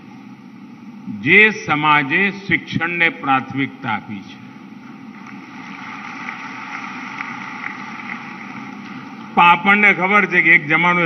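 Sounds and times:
large audience applauding: 5.1 - 9.2.

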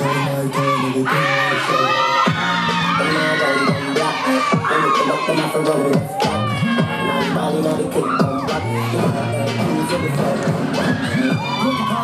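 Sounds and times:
crowd cheering and shouting: 0.0 - 12.0
loud dancehall music: 0.0 - 12.0.

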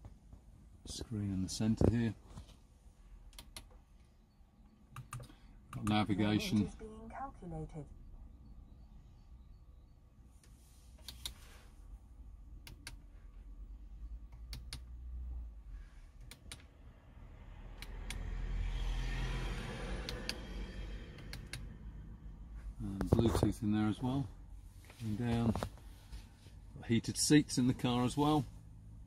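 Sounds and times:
control buttons clicking: 3.3 - 3.7, 4.9 - 6.0, 12.6 - 13.0, 14.3 - 14.9.

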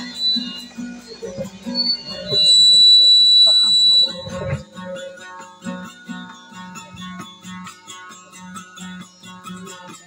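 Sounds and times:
loud high whistle: 0.0 - 4.6
acoustic guitars playing softly: 0.0 - 10.0.

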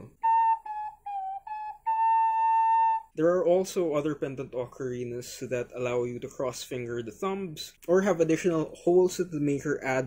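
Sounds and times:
ocarina low notes: 0.0 - 4.0.

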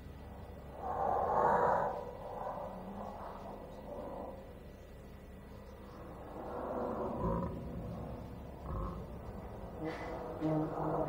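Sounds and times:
growling vocal roar: 6.3 - 11.0.

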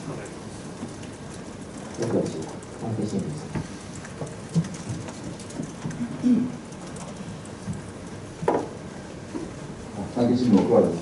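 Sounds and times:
steady background hiss: 0.0 - 11.0
man speaking: 10.0 - 11.0.

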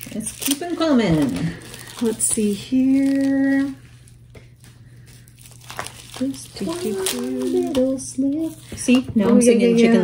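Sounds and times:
plastic packaging crinkling: 0.0 - 9.0.

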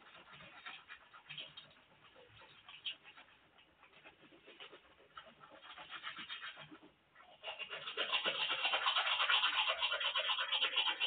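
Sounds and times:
toothbrush scrubbing teeth: 0.0 - 11.0.

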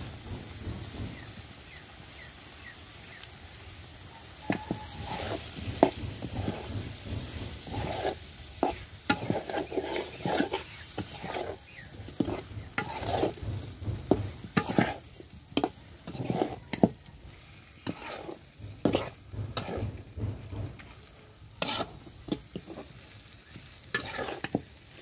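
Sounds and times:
meat sizzling: 0.0 - 25.0
spatula scraping a wok: 0.1 - 25.0.

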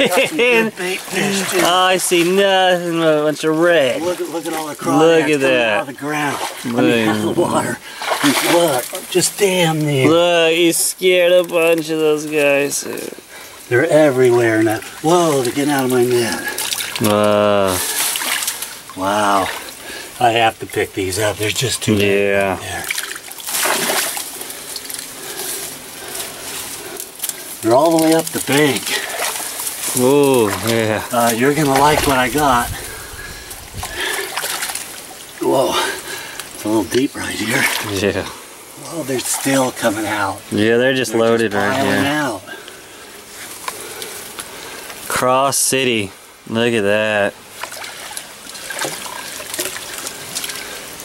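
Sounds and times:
water splashing and sloshing: 0.0 - 40.6, 41.2 - 45.2, 47.2 - 51.0.

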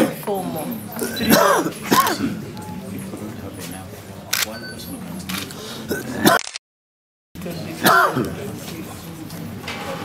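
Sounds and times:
murmur of voices: 0.0 - 6.4, 7.4 - 10.0.

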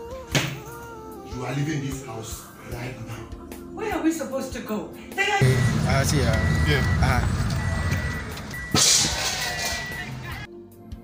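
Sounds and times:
road noise inside moving car: 5.4 - 8.8
high steady beep: 5.4 - 10.5.

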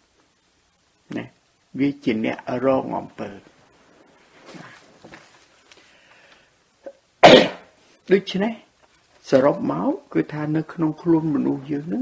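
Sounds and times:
person speaking: 1.0 - 5.4, 8.0 - 12.0
person coughing: 7.2 - 7.7.

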